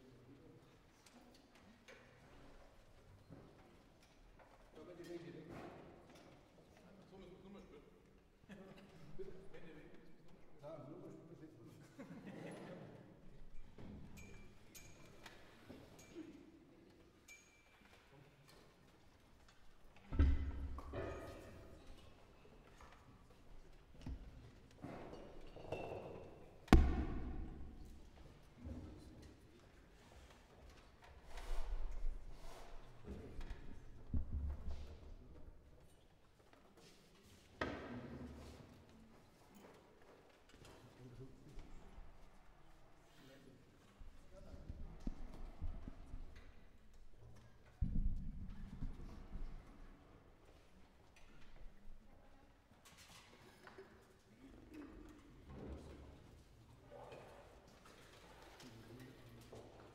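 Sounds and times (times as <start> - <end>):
sharp thud: 26.7 - 27.6.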